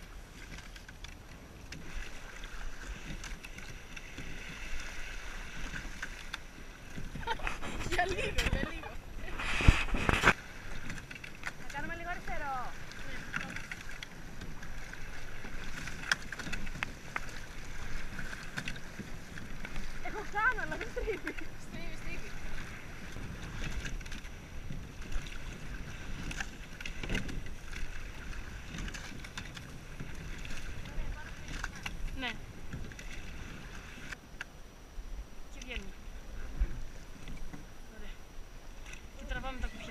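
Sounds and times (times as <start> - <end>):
water splashing along boat hull: 0.0 - 39.9
oars knocking: 0.4 - 34.0
wind buffeting microphone: 3.9 - 34.2.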